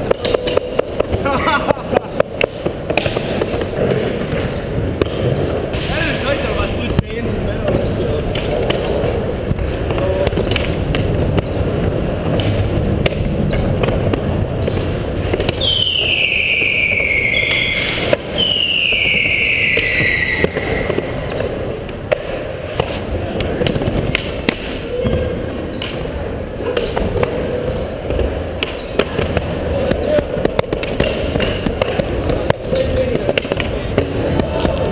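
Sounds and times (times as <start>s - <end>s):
skateboard clacks: 0.0s - 34.9s
skateboard wheels rolling on ramp: 0.0s - 34.9s
long falling whistles: 15.6s - 21.2s.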